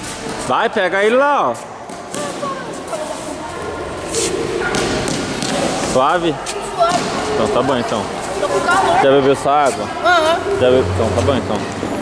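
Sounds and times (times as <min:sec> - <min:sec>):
children shouting: 0:10.0 - 0:11.3.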